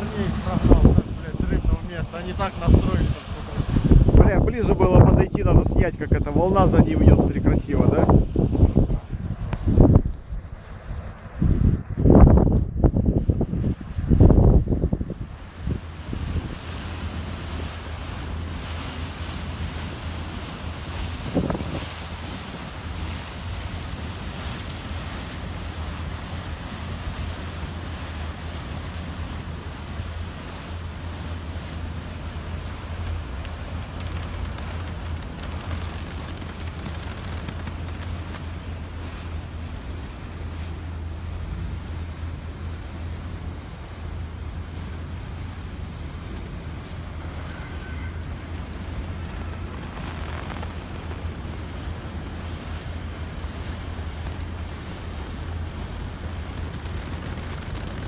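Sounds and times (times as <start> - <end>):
ship hull churning through ice: 0.0 - 58.0
strong low hum: 0.0 - 58.0.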